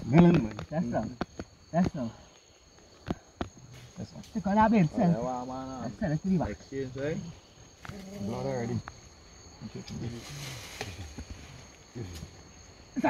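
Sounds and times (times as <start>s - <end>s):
men talking: 0.0s - 2.4s, 3.6s - 12.5s
crickets trilling: 0.0s - 13.0s
hissing rustle: 2.2s - 4.4s, 7.3s - 12.6s.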